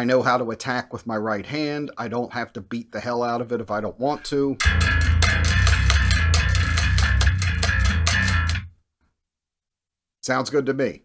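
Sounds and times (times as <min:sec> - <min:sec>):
electric bass guitar riff: 0:04.1 - 0:08.7.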